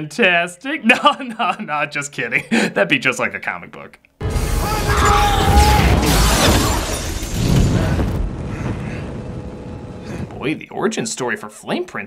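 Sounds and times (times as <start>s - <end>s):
shattering debris: 4.2s - 9.7s
fiery explosion blast: 4.2s - 10.5s.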